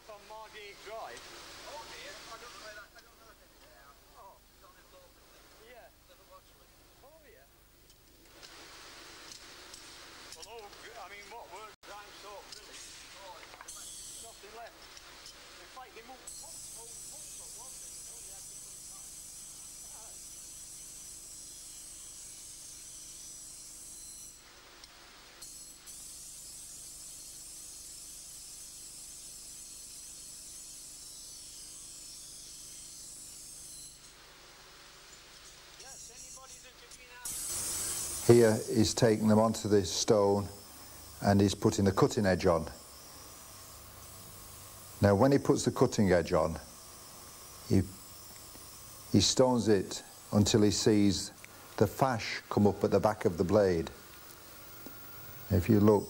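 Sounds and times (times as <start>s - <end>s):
steady high-pitched hiss: 0.0s - 56.0s.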